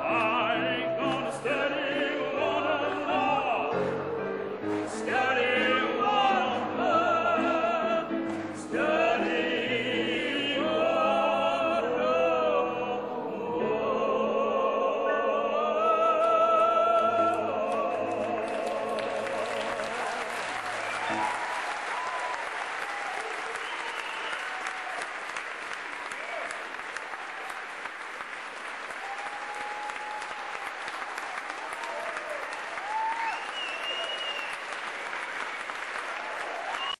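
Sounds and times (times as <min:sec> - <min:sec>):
audience applauding and cheering: 0:17.6 - 0:37.0.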